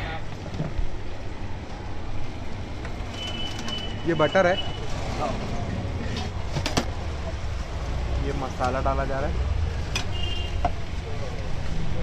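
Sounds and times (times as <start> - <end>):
busy food stall rumble: 0.0 - 12.0.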